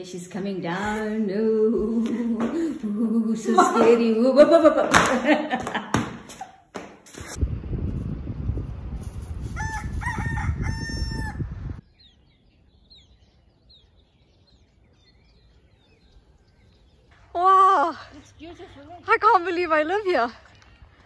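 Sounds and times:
rooster crowing: 0:09.5 - 0:11.8
small birds chirping: 0:11.8 - 0:21.0.

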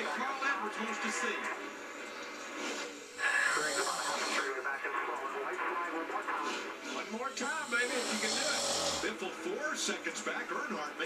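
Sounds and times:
race car engines on tv: 0:00.0 - 0:11.0.

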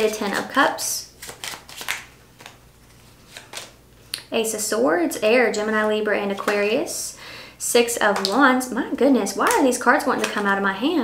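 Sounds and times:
cards being shuffled: 0:01.2 - 0:04.1.

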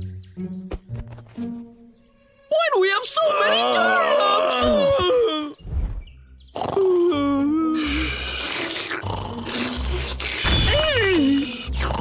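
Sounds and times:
soft music: 0:00.0 - 0:03.2, 0:06.2 - 0:12.0
cartoon bear groaning: 0:03.2 - 0:05.6, 0:06.6 - 0:12.0
rasping breath: 0:07.8 - 0:10.4.

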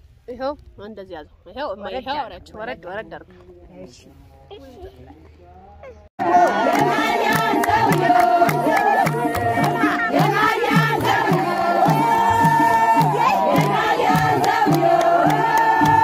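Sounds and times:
hands clapping rhythmically: 0:06.2 - 0:16.0
low beat: 0:06.2 - 0:16.0
women singing together: 0:06.2 - 0:16.0.

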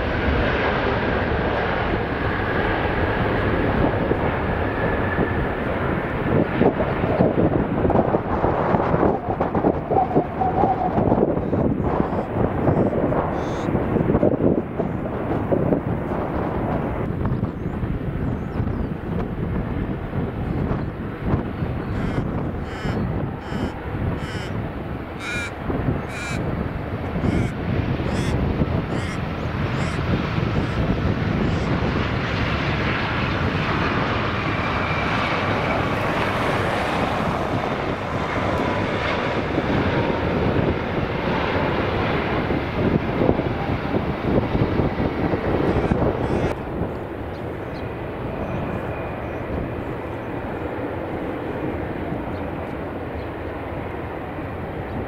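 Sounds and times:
jet engines landing: 0:00.0 - 0:55.0
bird calling: 0:11.5 - 0:13.7, 0:21.8 - 0:26.5, 0:27.1 - 0:31.8, 0:45.6 - 0:46.7.

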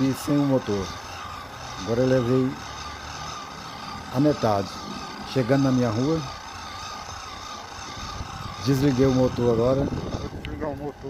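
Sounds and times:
bicycle motor whining: 0:00.0 - 0:11.0.

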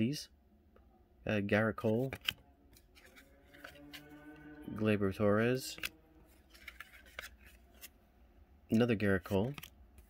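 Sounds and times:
cards clicking and sliding: 0:01.8 - 0:03.8, 0:05.6 - 0:08.0, 0:08.7 - 0:10.0.

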